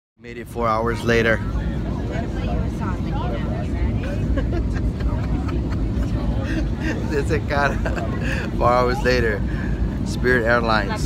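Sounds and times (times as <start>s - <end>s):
faint voices: 0.3s - 11.0s
airliner cabin rumble: 0.4s - 11.0s.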